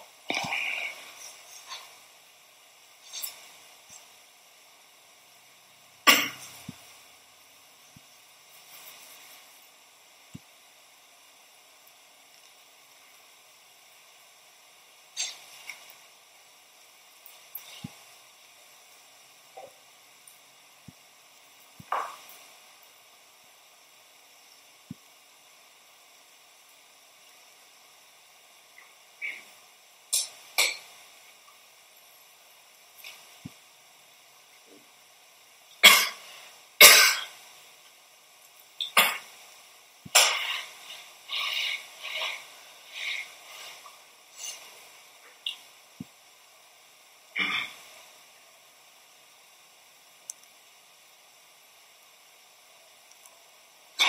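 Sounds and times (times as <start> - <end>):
faint clicks: 50.2 - 50.6.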